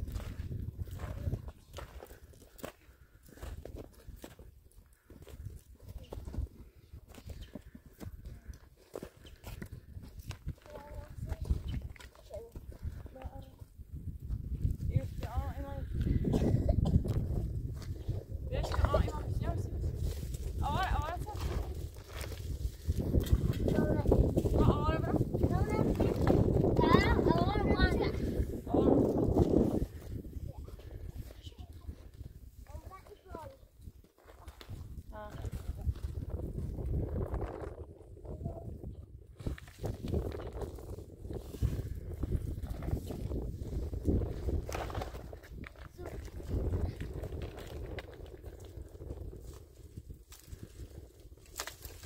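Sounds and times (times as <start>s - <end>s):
people talking: 10.6s - 13.6s, 14.9s - 15.9s, 18.5s - 19.8s, 20.6s - 21.7s, 23.4s - 29.1s, 32.7s - 33.6s, 35.1s - 36.0s.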